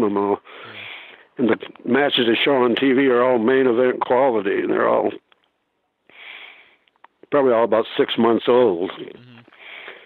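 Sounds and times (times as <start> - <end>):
man speaking: 8.0 - 9.6
man sniffing: 9.2 - 10.0.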